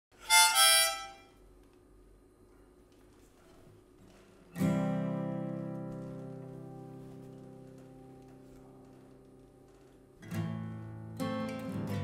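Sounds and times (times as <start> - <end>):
harmonica chords: 0.2 - 1.4.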